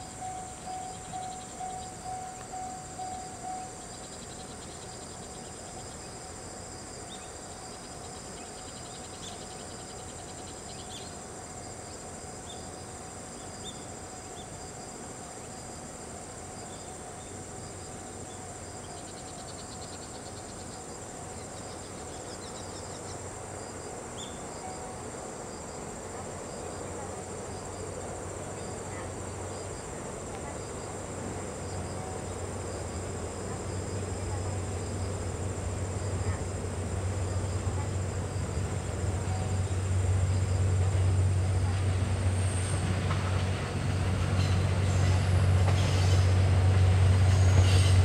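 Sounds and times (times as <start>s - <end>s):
crickets chirping: 0.0s - 48.0s
train rumble: 0.0s - 48.0s.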